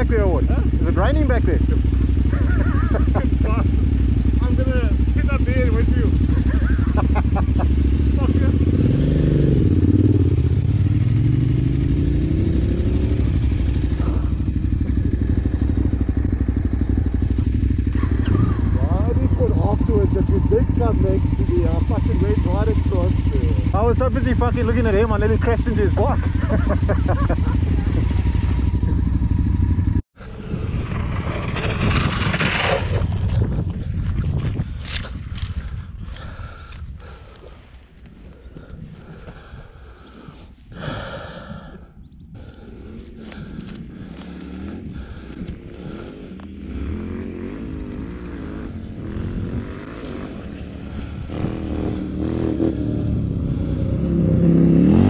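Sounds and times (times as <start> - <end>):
motorcycle engine revving: 0.0 - 37.4, 42.3 - 55.0
wind rushing over microphone: 26.2 - 55.0.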